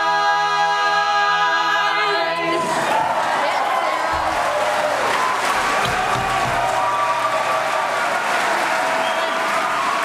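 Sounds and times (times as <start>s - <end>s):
audience applauding: 2.6s - 10.0s.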